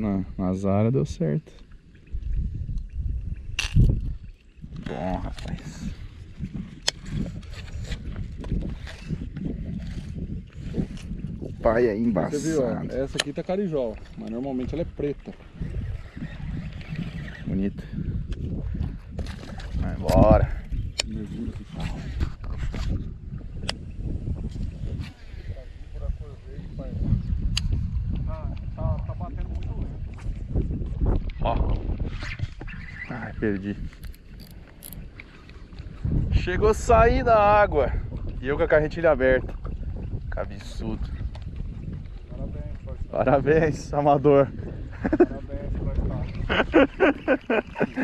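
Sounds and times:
wind rumble on microphone: 0.0 - 48.0.

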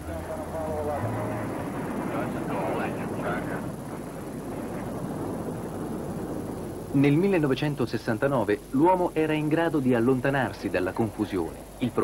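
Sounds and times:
rocket engines roaring: 0.0 - 12.0.

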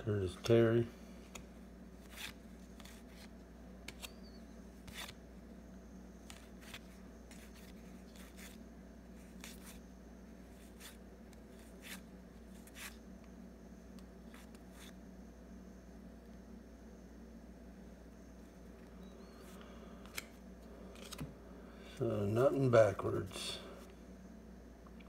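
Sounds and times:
steady low hum: 0.0 - 25.0
papery swish of cards sliding: 10.6 - 13.0.

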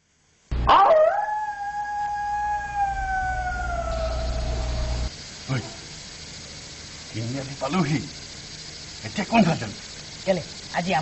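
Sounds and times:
low steady hum: 0.0 - 11.0
dog howling: 0.7 - 5.1.

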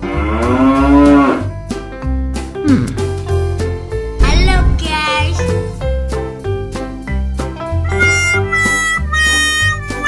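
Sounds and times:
background music with steady bass: 0.0 - 10.0.

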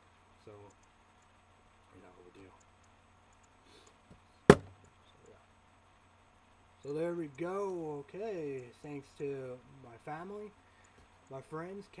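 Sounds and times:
sharp knock on hard surface: 4.5 - 4.8.

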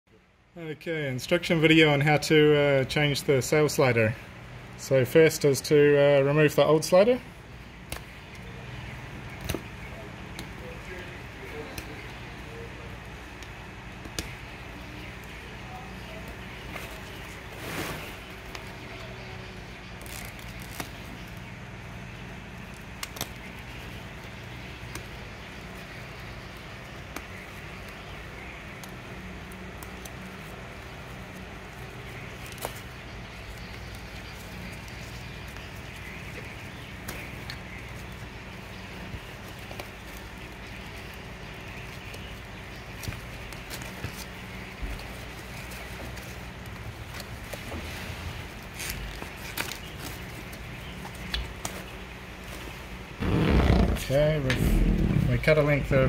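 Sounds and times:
low background hum: 0.1 - 56.0
sailcloth being handled: 15.2 - 21.6, 33.6 - 55.2.

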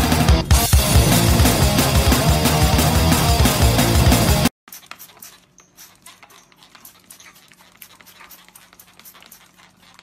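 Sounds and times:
dog panting: 4.7 - 10.0.

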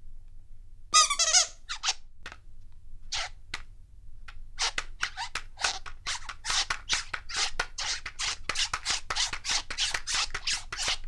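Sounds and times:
loud high squeak: 1.0 - 2.0.

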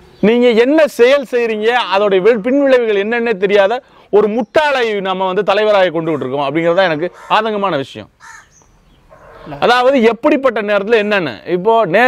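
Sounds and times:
man speaking: 0.2 - 8.2, 9.4 - 12.0
crow cawing: 7.0 - 7.6, 8.2 - 9.7.

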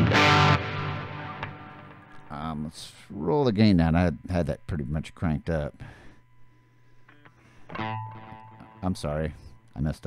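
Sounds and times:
overdriven electric guitar notes: 0.0 - 2.3, 7.1 - 9.2.

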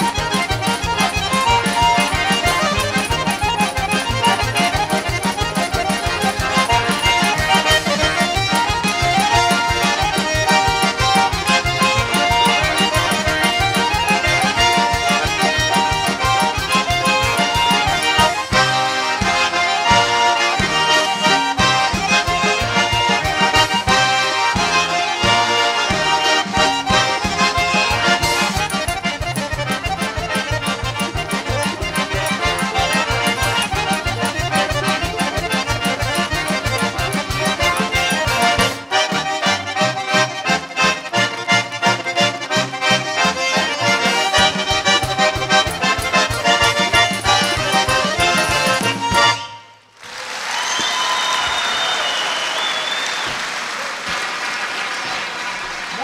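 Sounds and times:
fast accordion melody: 0.0 - 49.9
audience applause: 49.9 - 56.0
whistles from audience: 50.4 - 53.7.

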